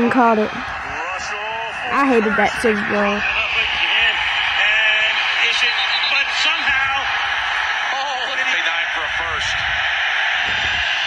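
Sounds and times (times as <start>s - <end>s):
commentator talking: 0.0s - 7.0s
stadium crowd roar: 0.0s - 11.0s.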